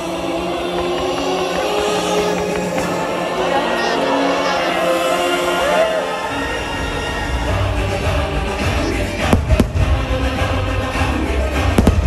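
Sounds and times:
fireworks bursting: 0.0 - 3.9, 9.1 - 10.6, 11.5 - 12.0
fireworks show music: 0.0 - 12.0.

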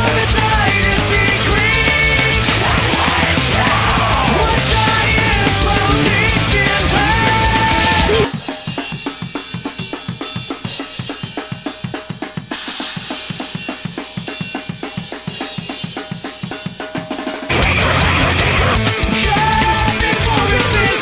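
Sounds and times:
drum kit playing: 0.0 - 21.0
full band playing: 0.0 - 21.0.

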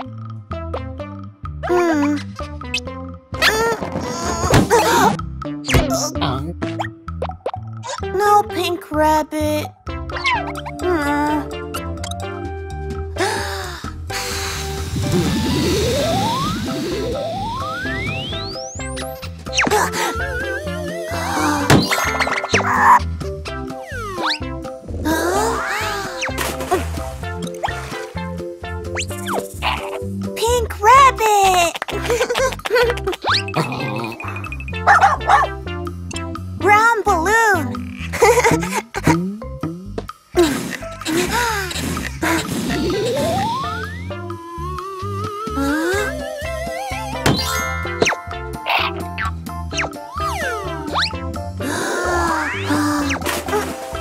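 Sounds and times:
children's background music: 0.0 - 54.0
cartoon upward pitch slides: 15.0 - 23.0, 23.8 - 24.5, 42.6 - 51.2
cartoon puppy yapping: 29.6 - 30.0, 34.8 - 35.6.

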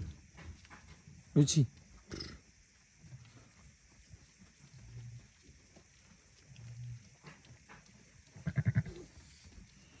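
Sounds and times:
ewe murmuring calls: 8.3 - 9.4.

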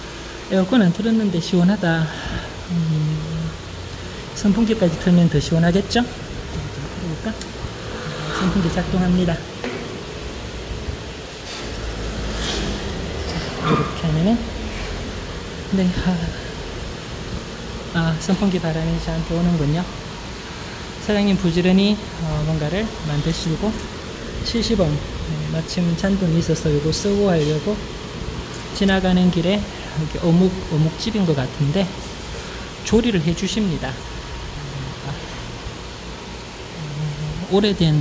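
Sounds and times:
electric fan running: 0.0 - 38.0.

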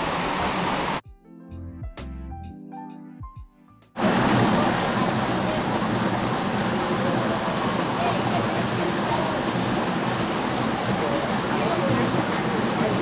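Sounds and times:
river water rushing over rocks: 0.0 - 1.0, 4.0 - 13.0
light background music: 1.0 - 4.0.

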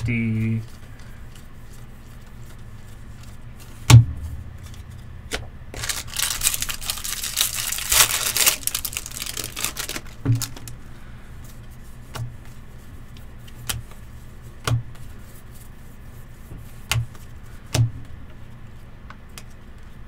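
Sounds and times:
wrapper tearing and crinkling: 5.7 - 10.8.

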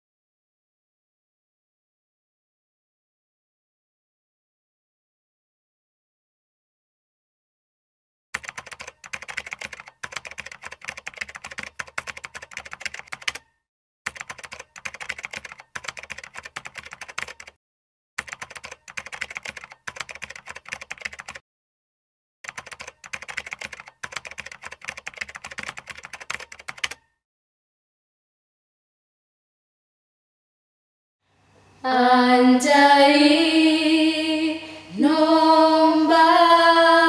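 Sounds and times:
rapid keyboard typing clicks: 8.4 - 13.5, 14.1 - 17.6, 18.2 - 21.4, 22.4 - 27.1.

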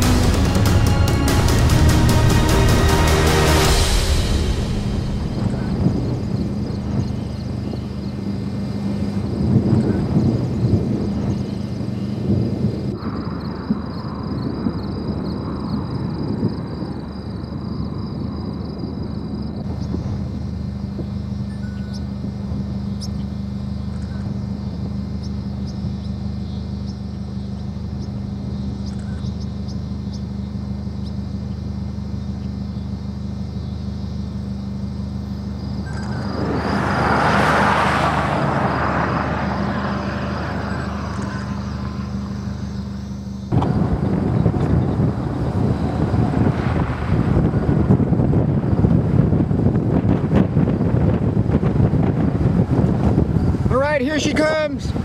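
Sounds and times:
truck passing close by: 0.0 - 55.0
vehicle engine running: 0.0 - 55.0
wind rumble: 0.0 - 55.0.

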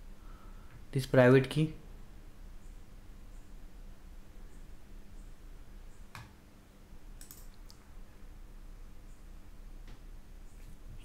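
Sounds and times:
faint low hum: 0.0 - 11.0
computer mouse clicks: 7.2 - 7.8.

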